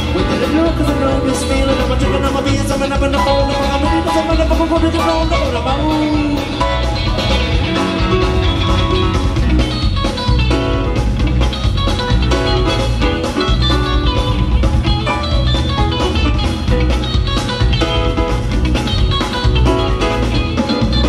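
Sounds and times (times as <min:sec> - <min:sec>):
bass and drum groove: 0:00.0 - 0:21.0
electric guitar lines: 0:00.0 - 0:21.0
live band playing: 0:00.0 - 0:21.0.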